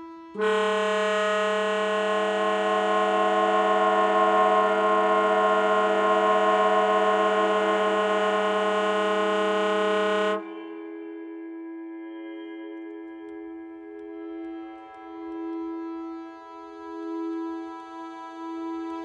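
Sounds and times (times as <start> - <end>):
soft wavering tone: 0.0 - 19.0.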